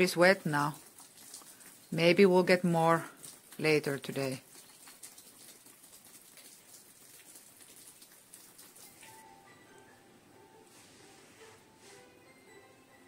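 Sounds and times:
rainwater dripping and pattering: 0:00.0 - 0:09.5
quiet background music: 0:08.7 - 0:13.0.

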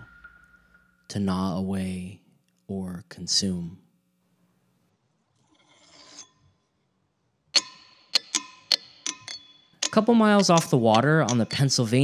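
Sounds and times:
hammer striking ringing rock: 0:00.0 - 0:01.0, 0:07.6 - 0:11.7
faint scrape: 0:05.4 - 0:06.6.

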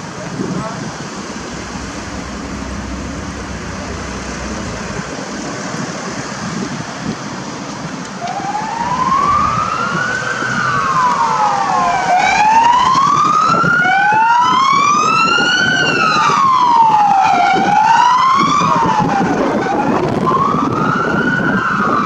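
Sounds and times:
traffic noise: 0:00.0 - 0:22.0
emergency sirens wailing: 0:00.8 - 0:07.2, 0:07.8 - 0:22.0.

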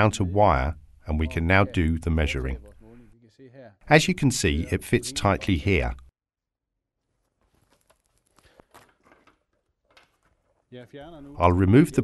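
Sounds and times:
man talking: 0:00.0 - 0:06.1, 0:10.7 - 0:12.0
faint clicks and rustling: 0:07.2 - 0:11.3.

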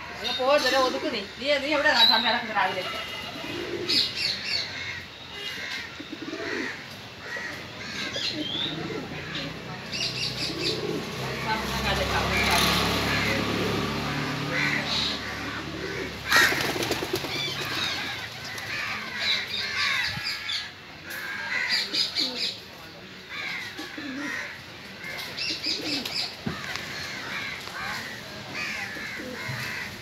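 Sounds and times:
birds calling: 0:00.0 - 0:30.0
pigeons cooing: 0:02.8 - 0:05.0, 0:05.6 - 0:11.7, 0:12.3 - 0:20.7, 0:23.3 - 0:30.0.

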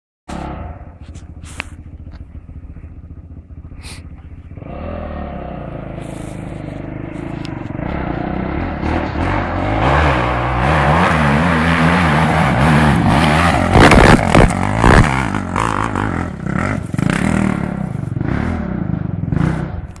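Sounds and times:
dirt bike engine revving: 0:03.6 - 0:19.9.

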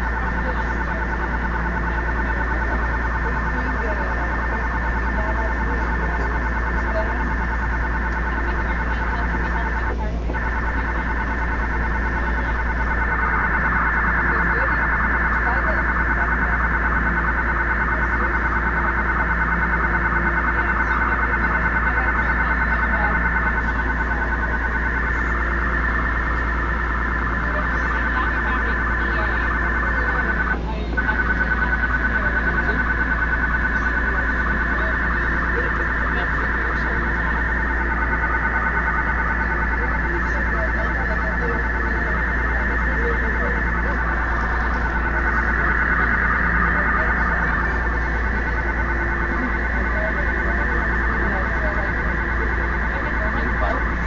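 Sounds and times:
harsh data tones: 0:00.0 - 0:54.0
low hum: 0:00.0 - 0:54.0.

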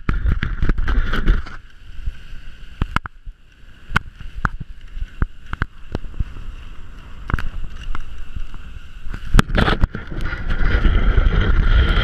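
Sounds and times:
sled swishing over snow: 0:00.0 - 0:12.0.

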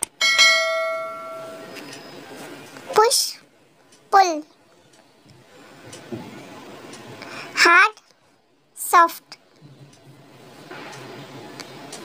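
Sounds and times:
bell chime ringing: 0:00.2 - 0:01.8.

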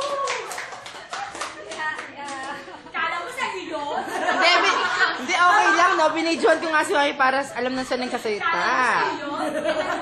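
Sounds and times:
people clapping: 0:00.0 - 0:03.0.

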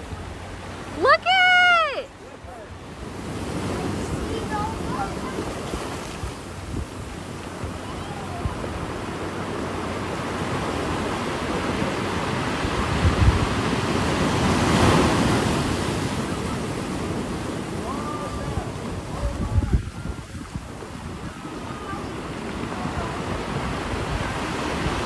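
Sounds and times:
ocean surf on beach: 0:00.0 - 0:25.0
wind rumbling on microphone: 0:02.5 - 0:25.0.

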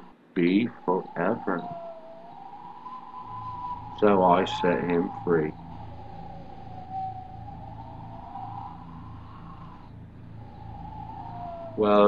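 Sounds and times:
high wavering drone tone: 0:00.0 - 0:12.0
low pulsing hum: 0:00.0 - 0:12.0.

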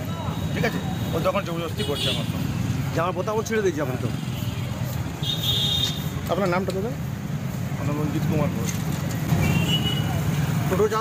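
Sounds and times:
vehicle engines rumbling: 0:00.0 - 0:11.0.

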